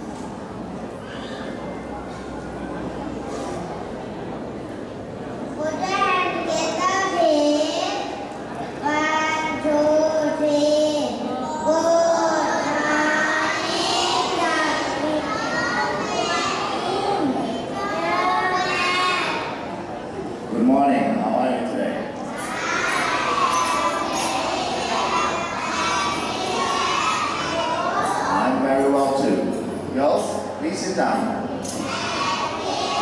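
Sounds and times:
indistinct chatter in a hall: 0.0 - 33.0
children singing in unison: 11.3 - 19.6, 22.3 - 28.5, 31.6 - 33.0.

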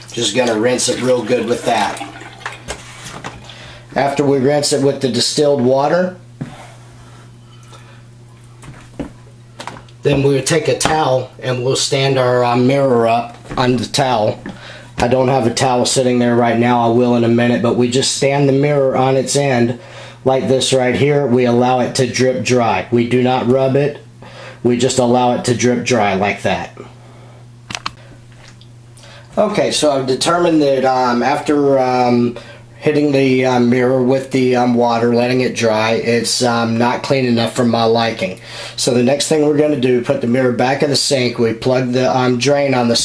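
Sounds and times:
steady low hum: 0.0 - 43.0.

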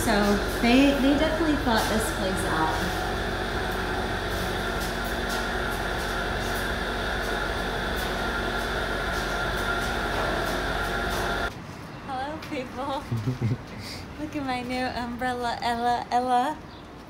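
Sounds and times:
clothes dryers humming: 0.0 - 11.5.

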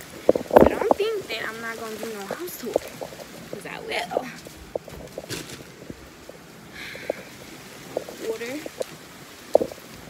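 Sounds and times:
heavy rain hiss: 0.0 - 10.0
light knocks and rustles: 0.2 - 6.4.

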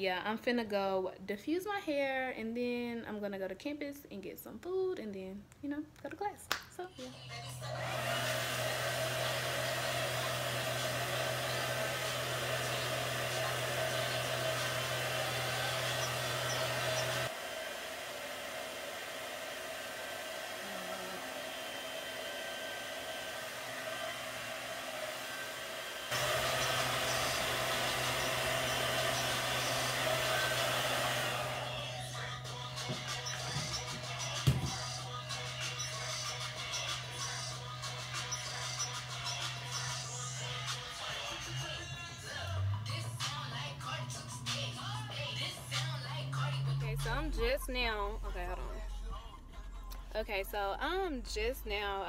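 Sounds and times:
hair dryer running: 7.0 - 48.8.

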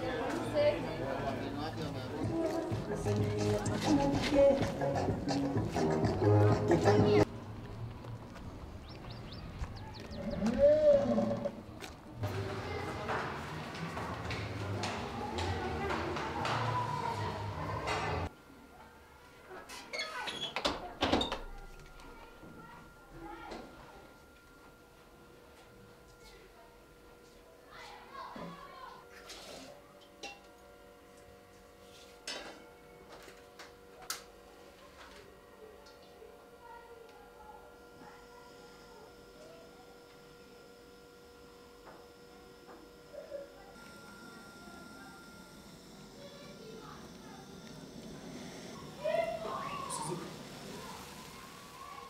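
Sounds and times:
low street background: 0.0 - 20.0, 20.6 - 51.9.

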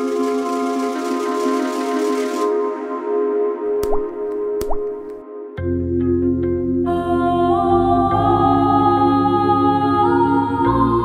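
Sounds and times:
ambient music pad: 0.0 - 11.0
dripping drop sound effect: 3.8 - 5.2.

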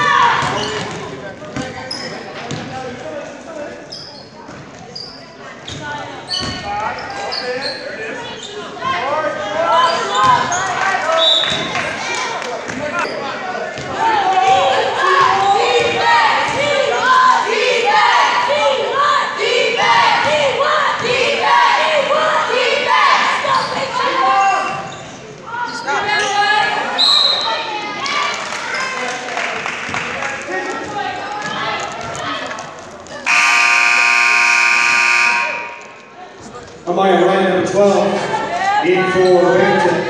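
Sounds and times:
people shouting: 33.3 - 35.9
scoreboard buzzer: 33.3 - 36.0.

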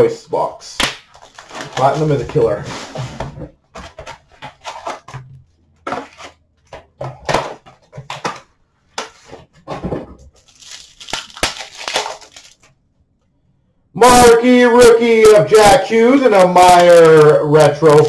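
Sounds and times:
card wrappers crinkling and tearing: 1.0 - 2.2, 10.4 - 12.7.

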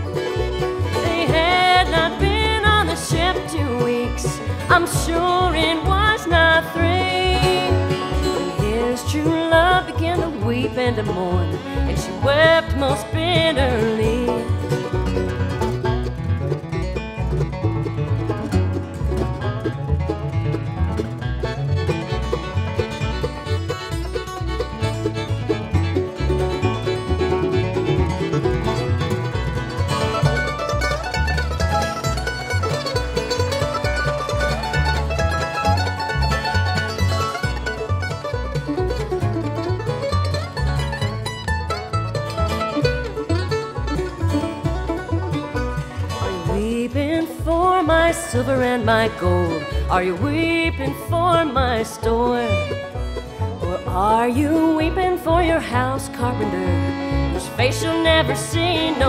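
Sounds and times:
acoustic guitar: 0.0 - 59.0
banjo: 0.0 - 59.0
fiddle: 0.0 - 59.0
mandolin: 0.0 - 59.0
upright bass: 0.0 - 59.0.

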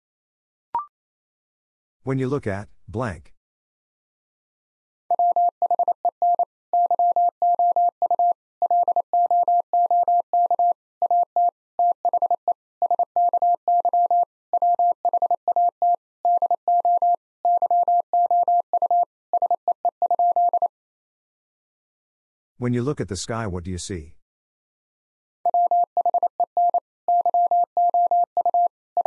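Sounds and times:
morse code beeps: 5.1 - 20.7, 25.5 - 29.0.

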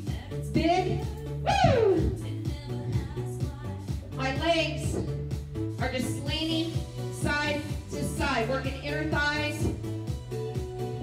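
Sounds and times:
pop song: 0.0 - 11.0.

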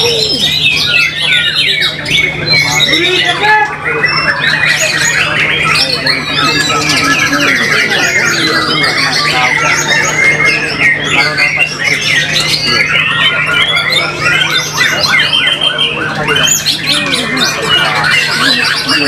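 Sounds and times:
birds singing whistled phrases: 0.0 - 19.0.

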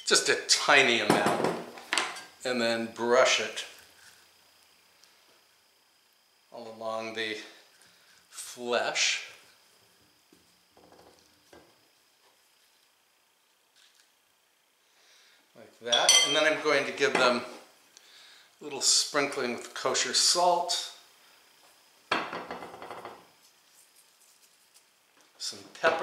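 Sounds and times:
pastry brush strokes: 23.4 - 25.0
salt sprinkling: 23.4 - 25.0.

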